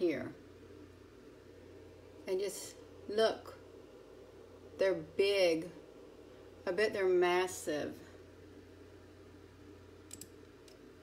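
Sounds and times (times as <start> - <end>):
low steady hum: 0.0 - 11.0
computer mouse clicks: 10.0 - 10.8.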